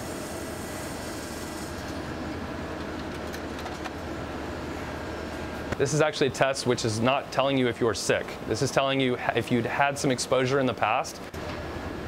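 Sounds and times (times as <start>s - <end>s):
laboratory analyzers humming: 0.0s - 12.0s.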